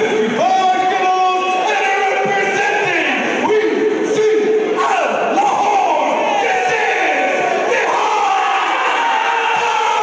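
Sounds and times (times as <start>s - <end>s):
man announcing over a pa: 0.0s - 7.9s
crowd shouting and cheering: 0.0s - 10.0s.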